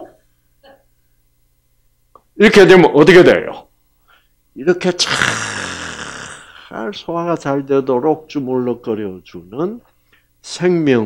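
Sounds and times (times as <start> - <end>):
faint groan: 5.0 - 6.7
man's strained hissing breath: 5.0 - 6.7.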